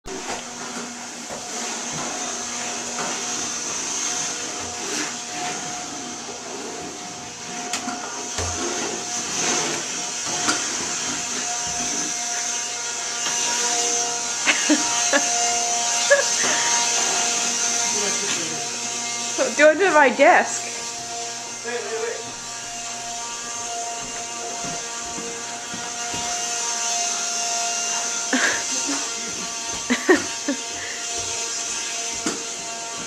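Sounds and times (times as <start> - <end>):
handheld vacuum whining: 0.0 - 33.0.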